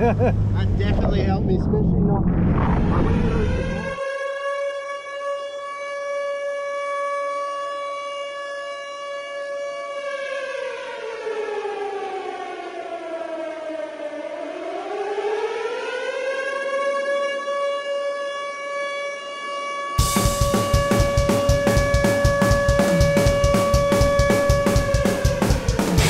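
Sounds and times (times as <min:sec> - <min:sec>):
siren-like wail in music: 0:03.1 - 0:08.8, 0:09.6 - 0:26.0.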